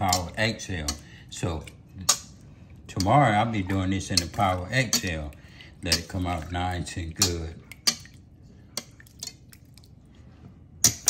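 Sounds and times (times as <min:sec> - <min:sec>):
whisk clinking against metal bowl: 0:00.0 - 0:08.1
whisk stirring wet marinade: 0:00.0 - 0:11.0.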